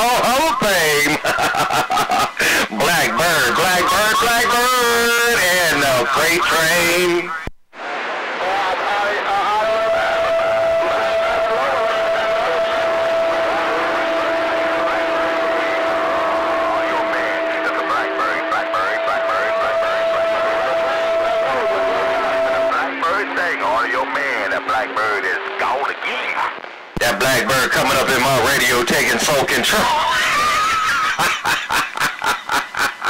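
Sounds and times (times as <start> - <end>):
garbled radio voices: 0.0 - 1.2, 2.4 - 7.5, 8.2 - 31.7
lower steady radio tones: 0.0 - 31.6
high radio whistle tone: 8.4 - 27.6.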